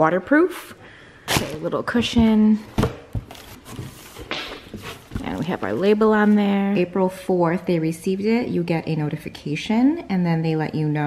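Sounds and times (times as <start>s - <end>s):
packing material rustling: 3.1s - 6.6s.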